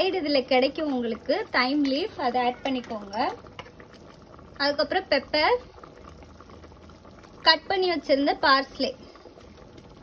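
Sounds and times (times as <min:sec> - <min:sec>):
soup bubbling in pot: 0:00.0 - 0:10.0.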